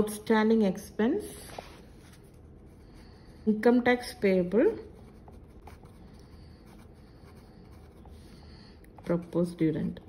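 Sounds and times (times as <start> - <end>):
pen scratching on paper: 4.6 - 9.4.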